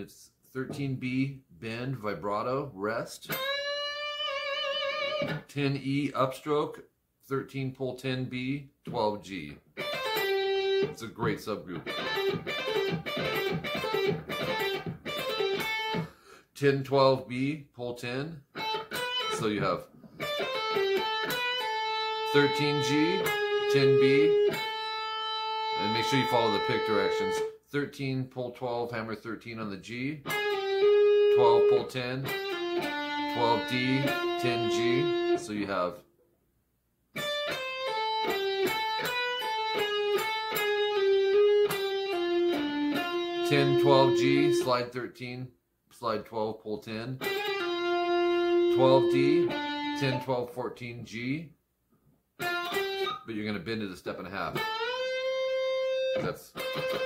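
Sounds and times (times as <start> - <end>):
electric guitar lead notes: 3.3 - 5.5, 9.8 - 11.0, 11.7 - 16.1, 18.5 - 19.6, 20.2 - 27.5, 30.2 - 35.5, 37.2 - 44.8, 47.2 - 50.3, 54.5 - 57.0.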